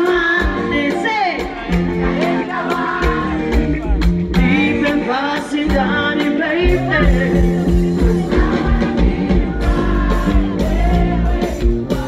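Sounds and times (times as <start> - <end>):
steady drum beat: 0.0 - 12.0
voices singing together: 1.8 - 3.8, 7.7 - 12.0.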